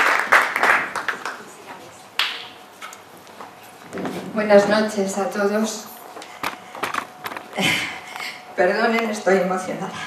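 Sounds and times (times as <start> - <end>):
microphone handling clicks and knocks: 6.4 - 7.6.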